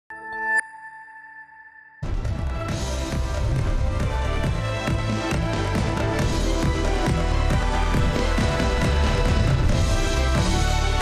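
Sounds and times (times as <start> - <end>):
high ringing tone: 0.1 - 2.0.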